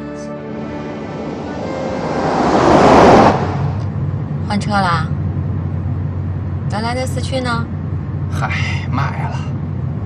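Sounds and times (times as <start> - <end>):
car passing by: 0.4 - 4.0
low engine rumble: 0.4 - 10.0.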